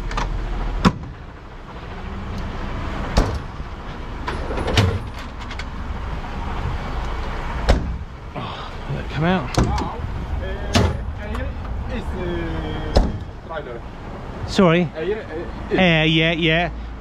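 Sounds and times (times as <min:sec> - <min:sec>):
diesel engine running: 0:00.0 - 0:17.0
metal locker doors clunking: 0:04.2 - 0:05.7, 0:10.7 - 0:11.2.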